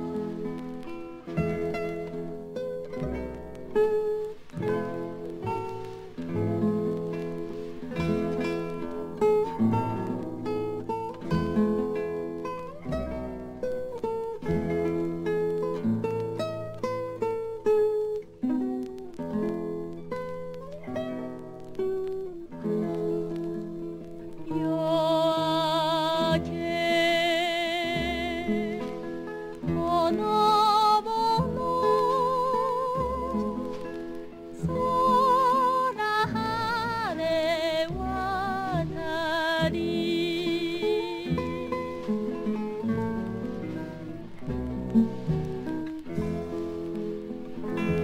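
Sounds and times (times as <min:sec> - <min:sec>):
plucked lute melody: 0:00.0 - 0:48.0.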